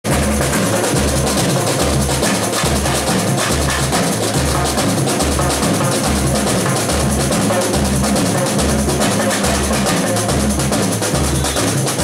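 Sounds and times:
fast snare drum patter: 0:00.0 - 0:12.0.

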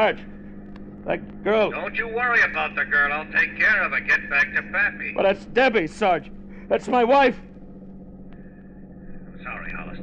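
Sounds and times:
car engine drone: 0:00.0 - 0:10.0
man's voice over police radio: 0:01.1 - 0:07.4, 0:09.3 - 0:10.0.

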